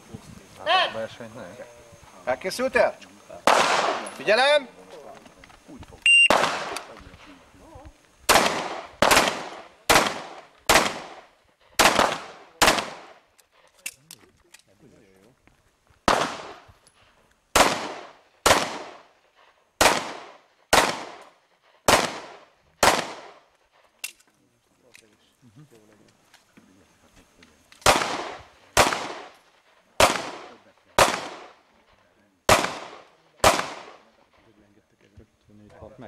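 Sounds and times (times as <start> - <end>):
pistol shots with echo: 3.4 - 4.2, 6.2 - 7.0, 8.3 - 13.2, 16.1 - 16.7, 17.5 - 19.1, 19.8 - 21.3, 21.9 - 23.4, 27.8 - 29.4, 30.0 - 31.6, 32.5 - 34.1.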